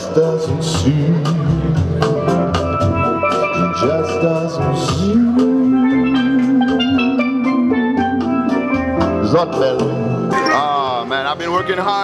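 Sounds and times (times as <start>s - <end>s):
drums: 0.0s - 12.0s
steelpan notes: 2.7s - 12.0s.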